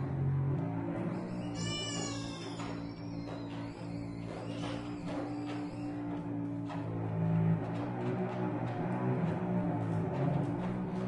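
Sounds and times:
cello bowed: 0.1s - 5.0s.

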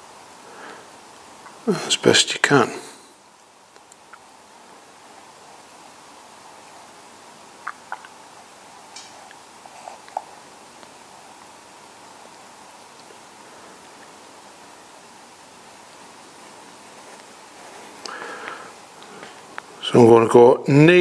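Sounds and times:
faint steady hiss: 0.0s - 21.0s.

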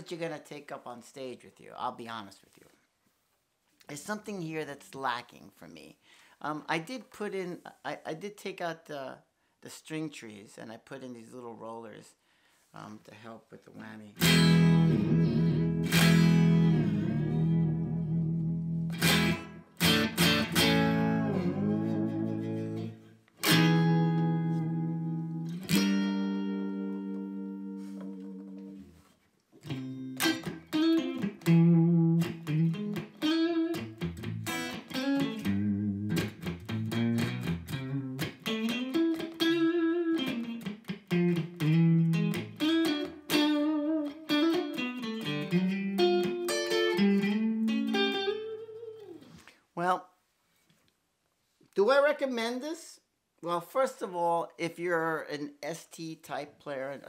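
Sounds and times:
electric guitar playing: 14.2s - 49.4s.

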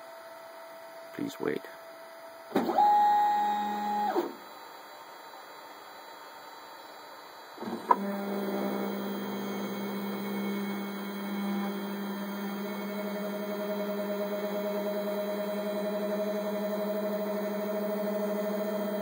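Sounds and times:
three d printer motors humming: 0.0s - 19.0s.

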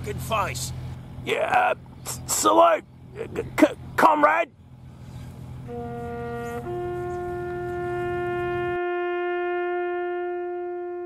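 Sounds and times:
low background rumble: 0.0s - 11.0s
brass horn long note: 5.6s - 11.0s.

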